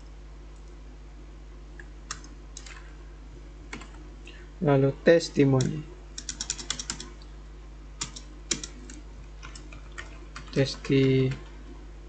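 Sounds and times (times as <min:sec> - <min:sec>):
steady low hum: 0:00.0 - 0:12.0
keyboard keystrokes: 0:05.6 - 0:07.2, 0:08.0 - 0:11.4.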